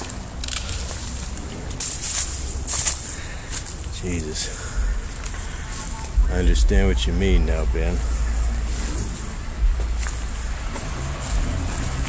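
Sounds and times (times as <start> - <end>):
footsteps crunching through dry leaves: 0.0 - 12.0
low steady rumble: 0.0 - 12.0.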